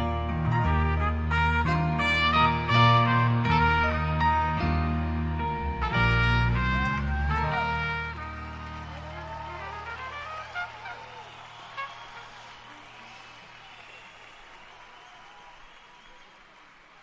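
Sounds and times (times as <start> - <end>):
band low note: 0.0 - 8.7
crowd cheering and whistling: 6.6 - 17.0.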